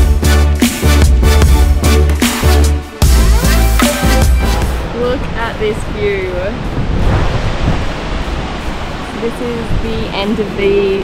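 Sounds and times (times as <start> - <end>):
wind buffeting microphone: 4.8 - 11.0.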